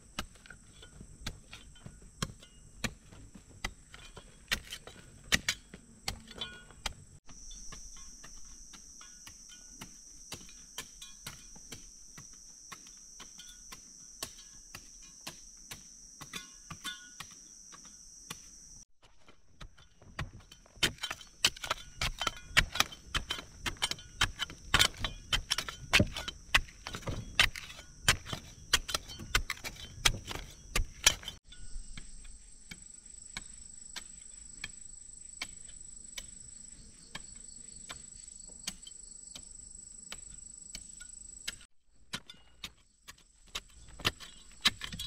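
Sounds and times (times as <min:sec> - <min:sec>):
hand pick striking earth: 0:00.0 - 0:36.5, 0:37.1 - 0:45.0
insect drone: 0:07.2 - 0:18.9, 0:21.0 - 0:41.7.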